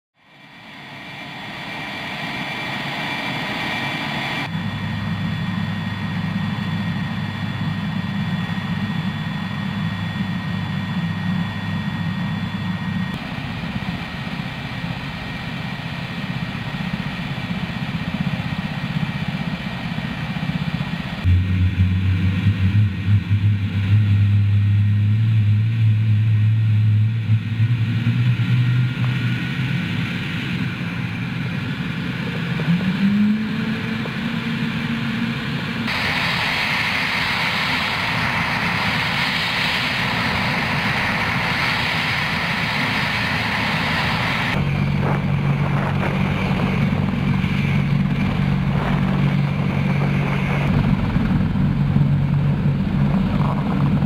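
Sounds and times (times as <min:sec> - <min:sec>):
helicopter engines whining: 0:00.2 - 0:54.0
rotor blades beating: 0:35.9 - 0:54.0.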